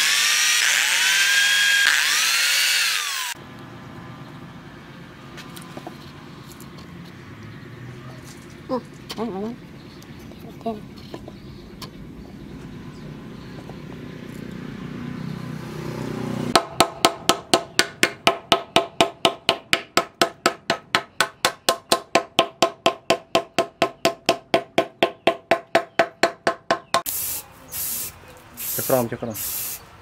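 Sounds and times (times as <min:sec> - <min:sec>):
spray can hissing: 0:27.1 - 0:29.9.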